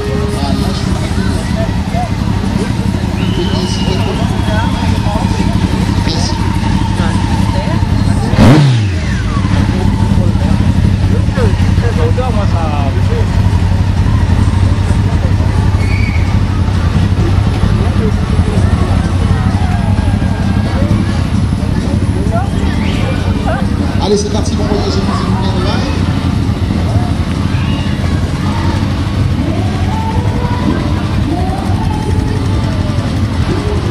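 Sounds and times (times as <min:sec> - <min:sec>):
motorcycle engine revving: 0:00.0 - 0:33.9
motorcycle engines running: 0:00.0 - 0:33.9
people talking: 0:00.0 - 0:33.9.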